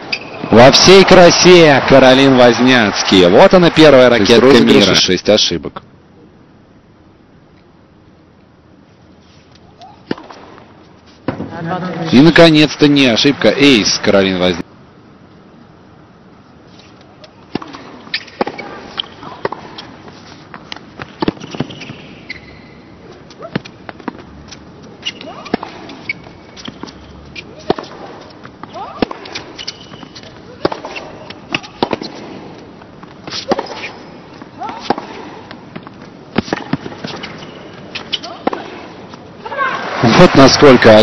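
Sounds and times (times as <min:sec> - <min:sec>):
racket hitting tennis ball: 0:17.2 - 0:22.2, 0:23.1 - 0:39.2
tennis ball bouncing: 0:17.2 - 0:22.5, 0:23.1 - 0:39.2.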